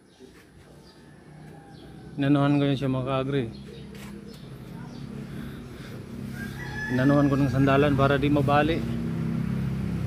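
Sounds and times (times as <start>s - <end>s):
rooster crowing: 0.8s - 2.4s, 6.1s - 8.6s.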